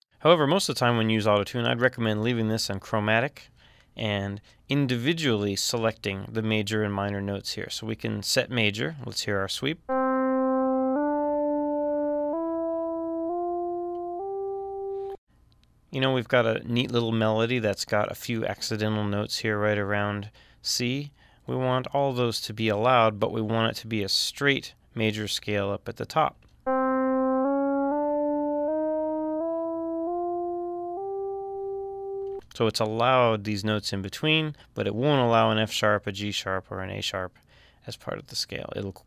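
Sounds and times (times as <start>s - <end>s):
synth tone stepping up in pitch: 9.9s - 15.2s, 26.7s - 32.4s.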